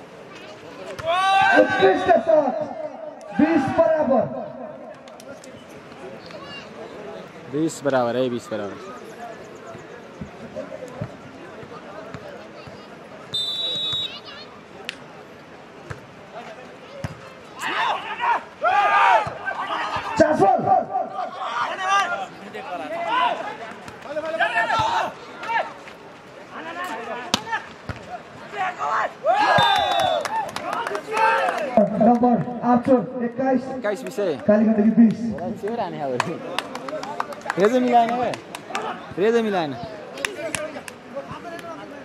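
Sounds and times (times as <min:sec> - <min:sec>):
people shouting and cheering: 0:00.8 - 0:04.8, 0:17.5 - 0:25.8, 0:26.6 - 0:32.4
referee's whistle: 0:13.3 - 0:14.4, 0:29.4 - 0:30.3.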